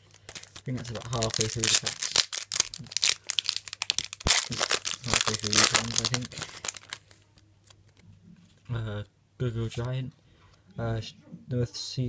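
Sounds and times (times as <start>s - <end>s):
foil pack crinkling and tearing: 0.0s - 7.2s.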